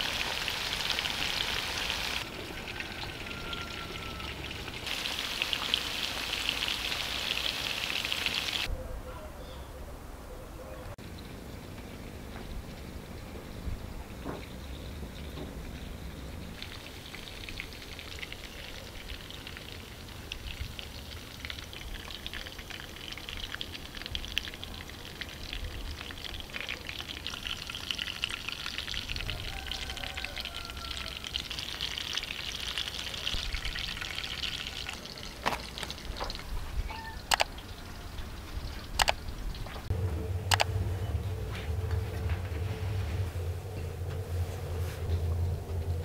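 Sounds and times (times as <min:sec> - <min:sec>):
meat sizzling in a frying pan: 0:00.0 - 0:02.2, 0:04.9 - 0:08.7, 0:20.8 - 0:36.4
sharp clicks: 0:37.2 - 0:37.6, 0:38.9 - 0:39.2, 0:40.5 - 0:40.7.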